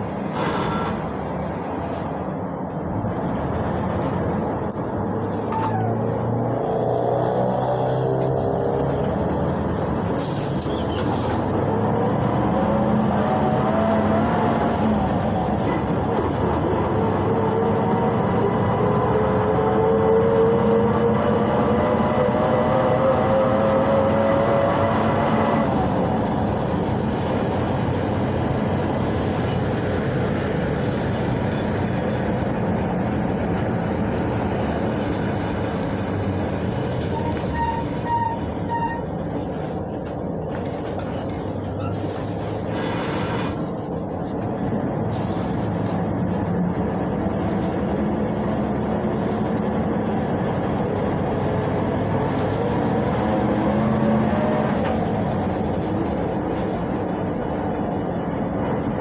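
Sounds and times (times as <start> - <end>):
bus engine rumble and whine: 0.0 - 59.0.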